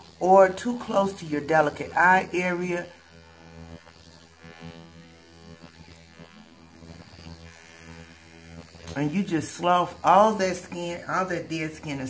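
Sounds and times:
ultrasonic skin scrubber buzzing: 0.0s - 12.0s.

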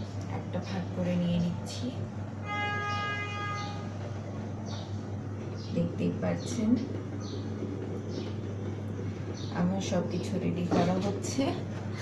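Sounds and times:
constant low hum: 0.0s - 12.0s
steady horn-like tone: 2.4s - 4.0s.

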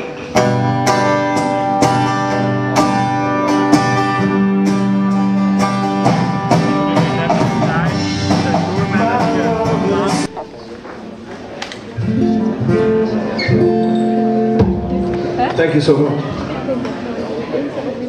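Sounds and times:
strummed acoustic guitar: 0.0s - 10.5s, 12.0s - 17.2s
drums: 0.0s - 15.6s
live band playing: 0.0s - 18.0s.

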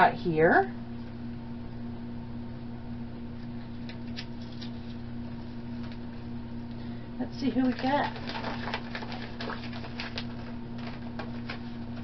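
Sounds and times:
steady low hum: 0.0s - 12.0s
plastic wrapping crinkling: 7.4s - 12.0s.

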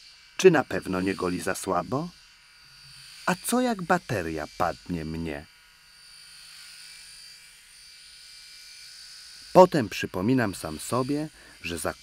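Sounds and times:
electric shaver buzzing: 0.0s - 12.0s.

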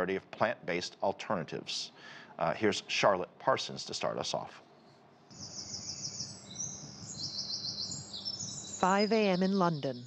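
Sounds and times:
songbirds trilling: 5.3s - 10.0s.

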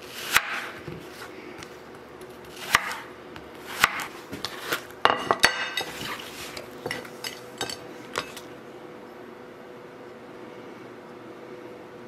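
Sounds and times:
knife and apple slices clinking on plate: 3.9s - 8.5s.

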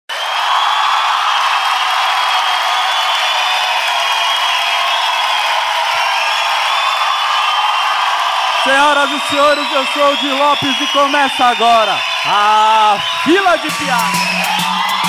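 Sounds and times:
audience applauding and cheering: 0.1s - 15.0s.

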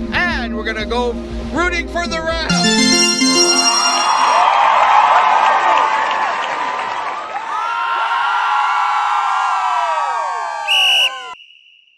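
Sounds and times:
crowd cheering and yelling: 2.5s - 11.4s
whistle blast: 10.7s - 11.9s.

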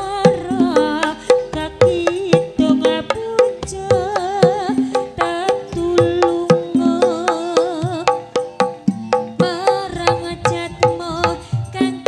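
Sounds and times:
hand-drum strokes: 0.0s - 12.0s
woman singing: 0.0s - 12.0s.

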